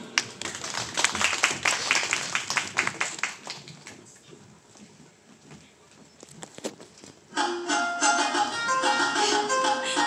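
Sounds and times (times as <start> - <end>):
audience clapping: 0.0 - 4.1.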